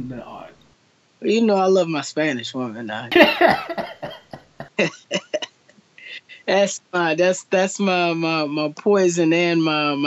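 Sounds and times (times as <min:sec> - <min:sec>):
man laughing heartily: 0:03.1 - 0:06.4.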